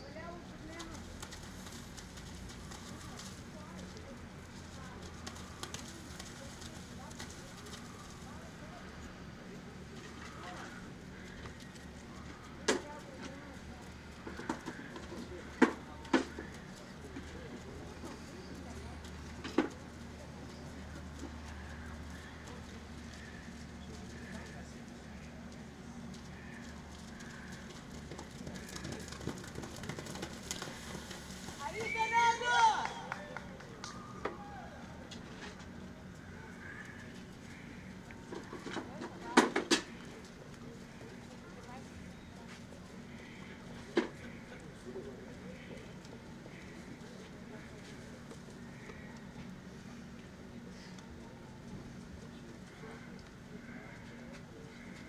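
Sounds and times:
faint distant voices: 0.0 - 55.0.

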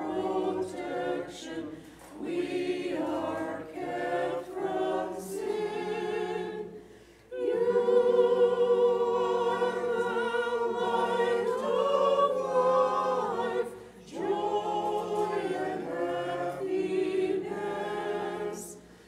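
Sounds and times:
unaccompanied choir chanting: 0.0 - 19.0.

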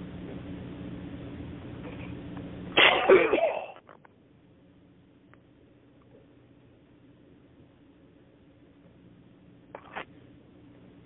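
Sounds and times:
low phone line hum: 0.0 - 11.0
person coughing: 2.8 - 3.8.

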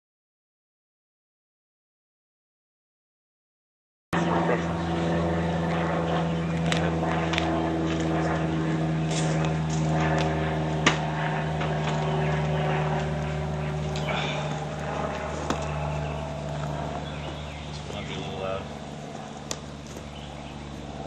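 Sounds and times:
mechanical hum: 4.2 - 21.0
sharp pop: 10.8 - 11.0.

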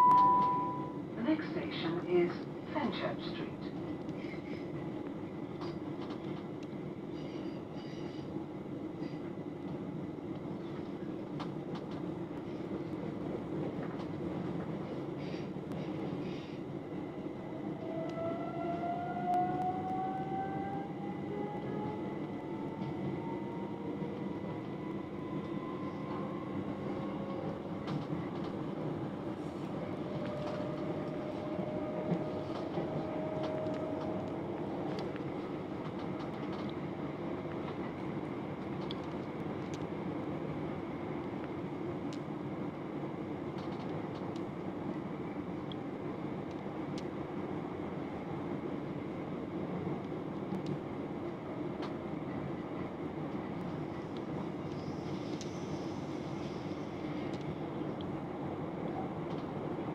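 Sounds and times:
wheels rumbling on rails: 17.6 - 38.0.

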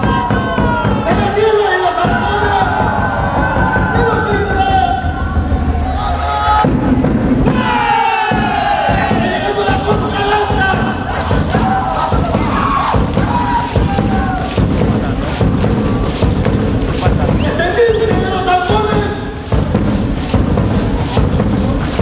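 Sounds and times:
crowd cheering and shouting: 0.0 - 22.0
folk dance music: 4.2 - 22.0.

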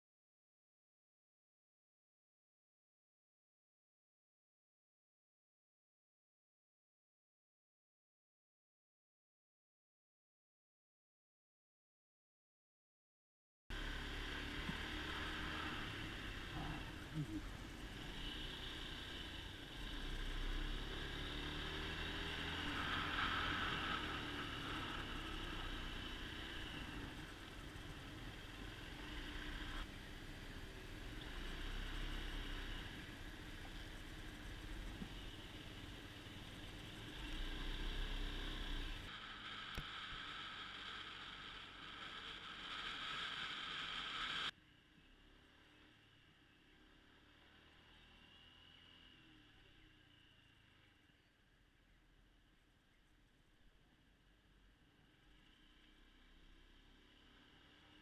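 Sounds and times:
scooter engine running: 13.7 - 44.5.

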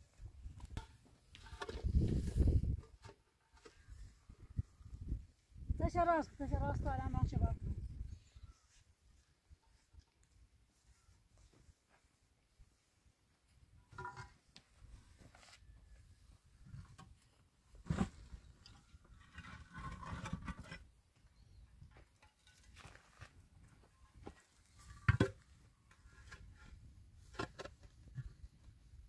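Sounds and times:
blocks scraping on blocks: 19.2 - 20.8.

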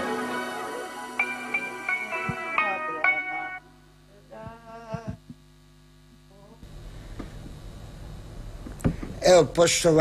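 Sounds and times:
background noise: 0.0 - 10.0
electrical mains hum: 0.0 - 10.0.

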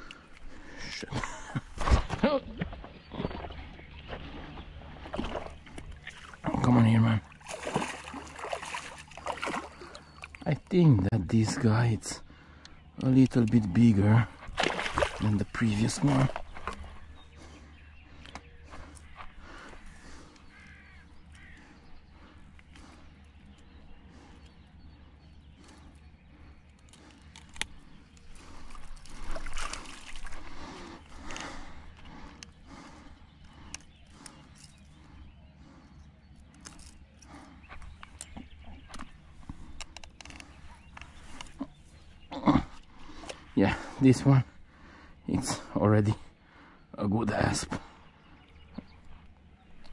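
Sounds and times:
fish splashing and thrashing: 1.8 - 6.5, 7.2 - 10.4, 14.4 - 17.5, 25.6 - 34.4.

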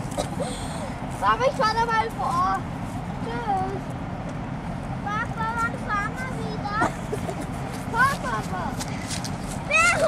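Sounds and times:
child calling out: 9.7 - 10.0.

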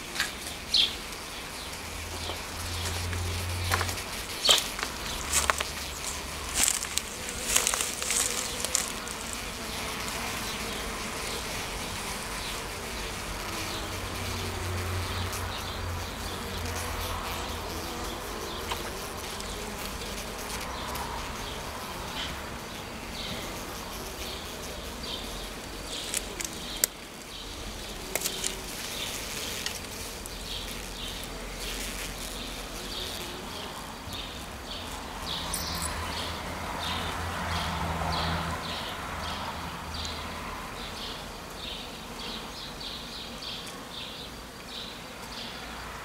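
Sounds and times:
honeybees buzzing: 0.0 - 46.0.

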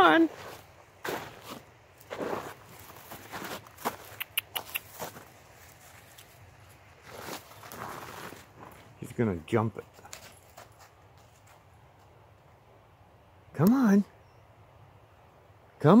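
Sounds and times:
footsteps in snow: 0.0 - 9.2, 9.8 - 12.1.

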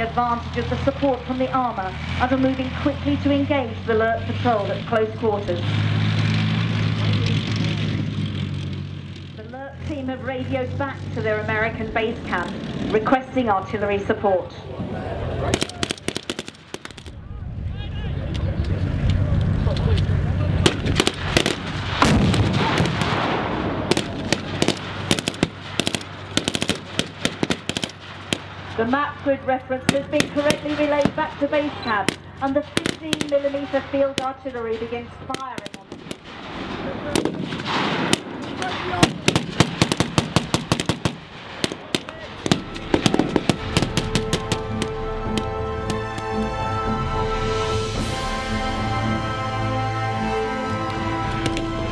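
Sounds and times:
tracked vehicle engine and tracks: 0.0 - 51.9
blank rifle shots: 15.5 - 17.2, 20.6 - 28.7, 32.0 - 33.6, 35.3 - 44.9
machine gun firing: 15.5 - 17.2, 20.6 - 28.7, 29.9 - 33.6, 35.3 - 44.9
background music with held tones: 42.6 - 51.9.

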